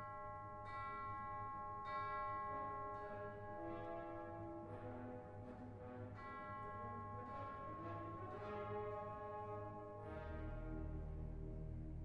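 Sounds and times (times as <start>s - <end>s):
quiet orchestral music: 2.5s - 12.0s.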